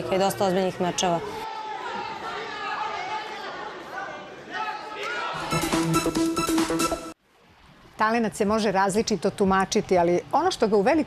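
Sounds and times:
crowd murmur in sports hall: 0.0s - 5.6s.

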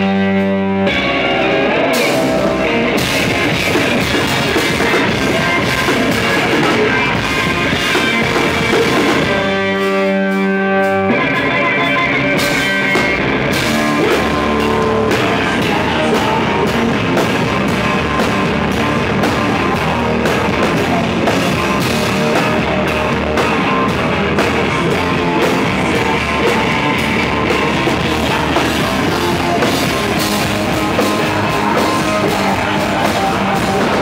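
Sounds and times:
live rock band playing: 0.0s - 34.0s.

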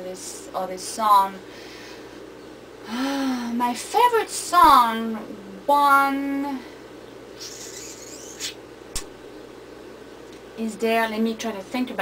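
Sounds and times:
person breathing: 1.5s - 2.2s, 2.8s - 3.6s.

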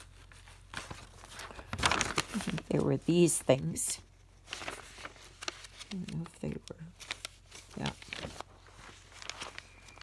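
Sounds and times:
paper pages rustling: 0.0s - 10.0s.

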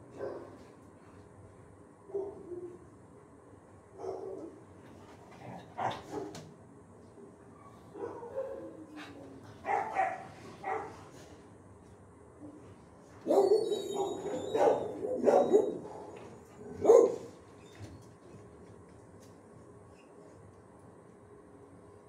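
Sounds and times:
dogs barking: 0.2s - 0.5s, 4.0s - 4.6s, 7.9s - 8.9s, 9.6s - 11.0s, 13.2s - 17.4s.

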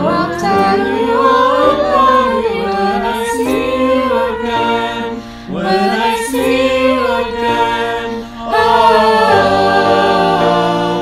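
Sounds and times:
choir singing a cappella: 0.0s - 11.0s.

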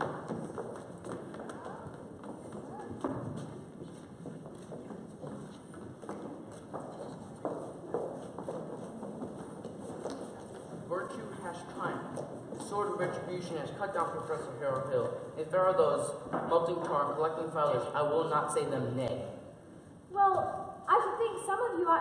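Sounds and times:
footsteps on stage floor: 0.0s - 17.9s.

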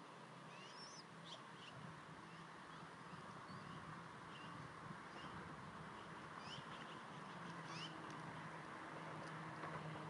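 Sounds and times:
eaglets begging peeps: 0.5s - 2.5s.

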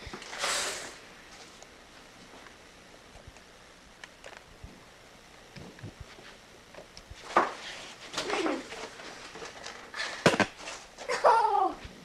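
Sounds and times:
boy groaning: 11.1s - 11.8s.

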